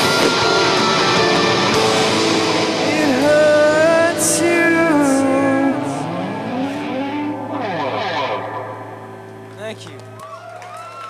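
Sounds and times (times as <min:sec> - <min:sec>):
amplifier hum: 0:00.0 - 0:10.1
electric guitar with effects: 0:00.0 - 0:11.0.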